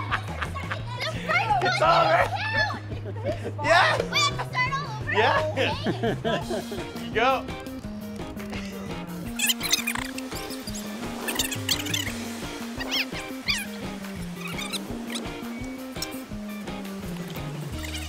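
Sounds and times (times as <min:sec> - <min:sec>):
background music with bass line: 0:00.0 - 0:18.0
high squeaky chirps: 0:09.2 - 0:16.2, 0:17.2 - 0:18.0.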